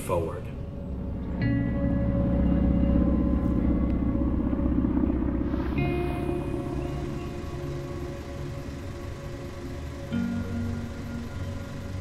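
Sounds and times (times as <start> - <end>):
low rumbling drone: 0.0 - 12.0
faint held tone: 1.1 - 12.0.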